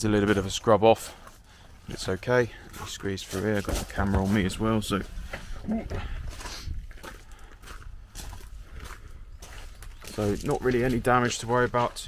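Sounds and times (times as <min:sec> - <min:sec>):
footsteps on gravel: 0:00.2 - 0:12.0.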